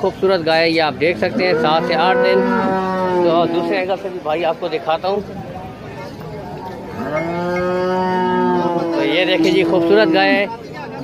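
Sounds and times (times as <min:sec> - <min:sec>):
cow mooing: 0:01.2 - 0:03.9, 0:07.0 - 0:10.4.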